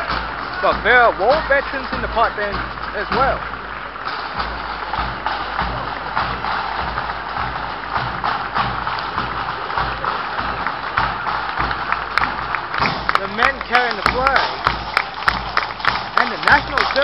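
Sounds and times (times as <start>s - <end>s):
bagpipes: 0.0s - 17.0s
snare and bass drums marching: 0.0s - 17.0s.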